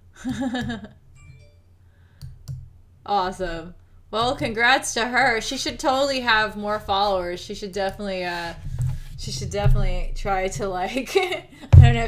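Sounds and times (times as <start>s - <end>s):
computer mouse clicks: 2.2s - 2.7s.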